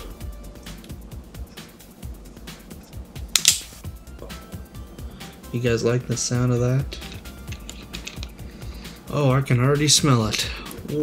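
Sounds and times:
background music: 0:00.0 - 0:11.0
soda can pop and hiss: 0:03.3 - 0:03.8.

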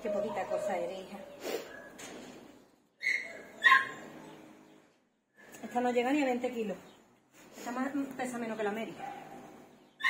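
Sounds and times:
dog yelping: 0:03.0 - 0:04.2.

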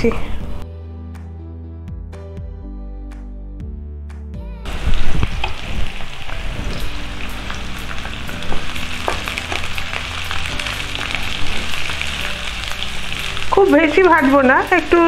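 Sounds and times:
onions sizzling in hot oil: 0:04.7 - 0:15.0.

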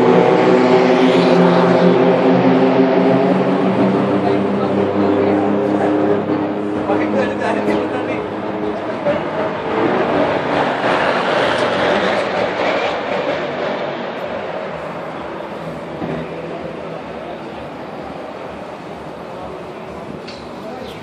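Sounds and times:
car passing at speed: 0:00.0 - 0:20.3.

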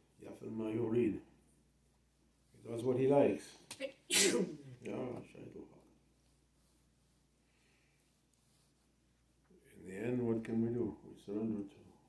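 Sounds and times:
sharp hiss: 0:04.1 - 0:04.5.

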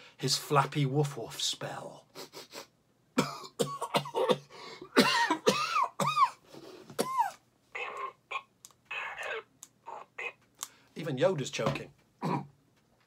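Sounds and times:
man coughing and gagging: 0:03.2 - 0:08.5, 0:12.2 - 0:12.5
strained voice sliding up and down: 0:07.8 - 0:10.4.

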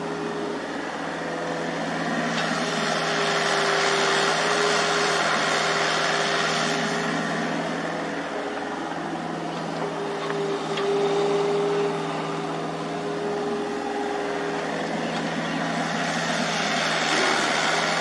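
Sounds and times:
excavator diesel engines running: 0:00.0 - 0:18.0
steady whine: 0:04.2 - 0:18.0.

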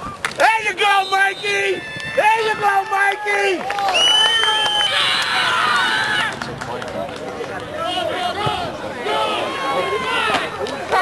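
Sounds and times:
crowd chatter: 0:00.0 - 0:11.0
spectators cheering and shouting: 0:00.0 - 0:11.0
referee's whistle: 0:00.8 - 0:02.0.

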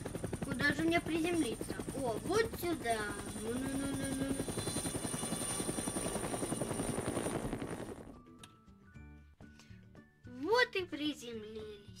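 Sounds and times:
helicopter rotor chopping: 0:00.0 - 0:08.2
soft background music: 0:08.0 - 0:12.0.

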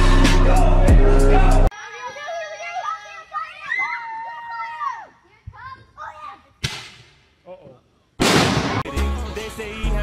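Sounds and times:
music with heavy bass beat: 0:00.0 - 0:01.7
sharp crack-like burst: 0:08.2 - 0:08.8.

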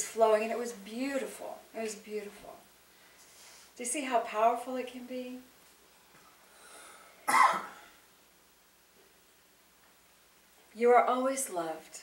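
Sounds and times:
woman coughing: 0:07.3 - 0:07.9.

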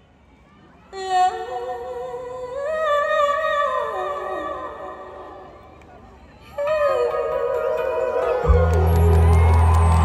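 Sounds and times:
woman singing into microphone: 0:00.9 - 0:05.6, 0:06.4 - 0:09.9.

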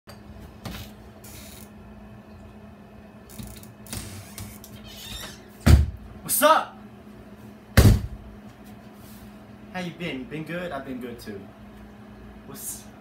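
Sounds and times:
steady low hum: 0:00.1 - 0:13.0
loud thump: 0:07.8 - 0:08.2.

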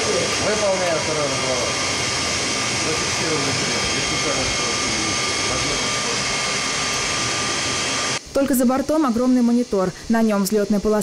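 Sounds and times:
rushing jet engine noise: 0:00.0 - 0:08.4.

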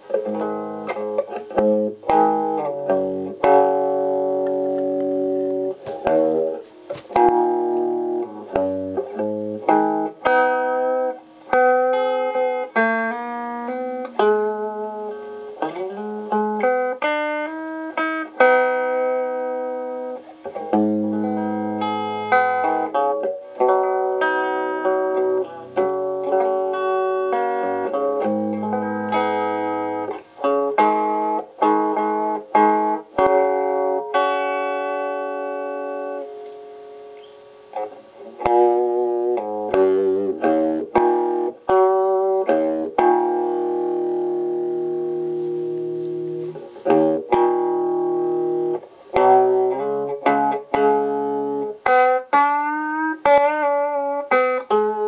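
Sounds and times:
electric guitar plucked notes: 0:00.0 - 0:55.0.

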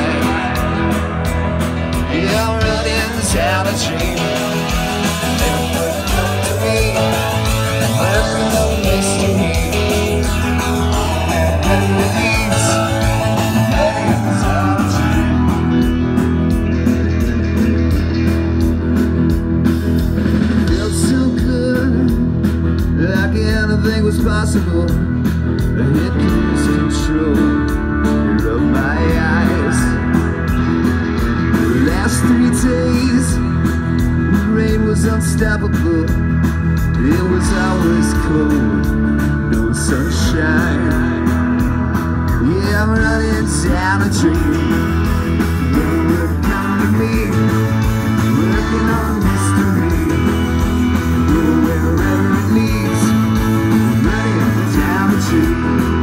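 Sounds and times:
person singing: 0:00.0 - 0:16.2, 0:20.6 - 0:30.3, 0:31.6 - 0:33.6, 0:36.9 - 0:41.5, 0:42.3 - 0:56.0
electric guitars: 0:00.0 - 0:56.0
live rock band playing: 0:00.0 - 0:56.0
steady drum beat: 0:00.0 - 0:56.0.

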